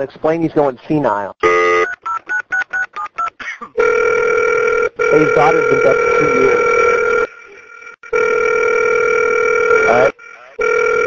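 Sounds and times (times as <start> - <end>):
touch-tone dialling beeps: 1.4 - 8.3
steady phone-line tone: 1.4 - 11.0.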